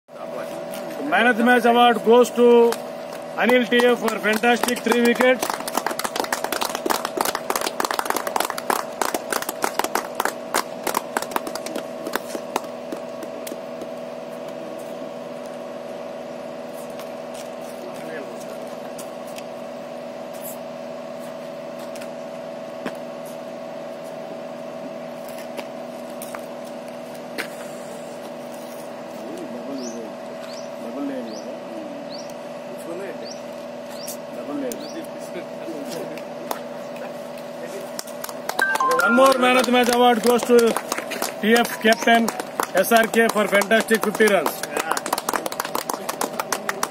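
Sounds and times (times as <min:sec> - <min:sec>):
hands clapping: 0:02.6 - 0:14.0, 0:37.9 - 0:46.9.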